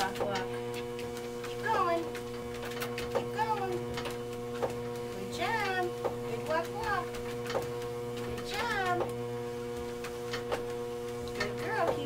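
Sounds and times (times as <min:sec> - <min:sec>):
treadmill motor hum: 0:00.0 - 0:12.0.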